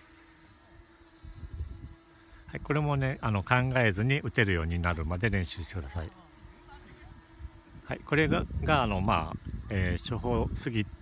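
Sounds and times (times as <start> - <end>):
distant drone hum: 0.0 - 11.0
wind rumble on microphone: 1.2 - 2.7, 6.8 - 11.0.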